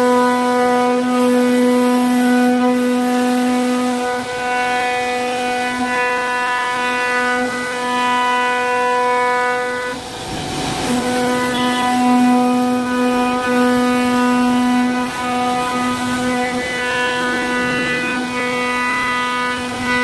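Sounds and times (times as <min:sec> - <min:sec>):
router spindle whining: 0:00.0 - 0:20.0.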